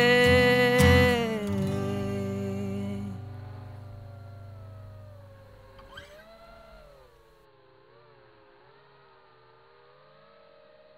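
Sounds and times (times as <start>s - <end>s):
background song music: 0.0s - 4.7s
quadcopter motors whining: 2.7s - 10.9s.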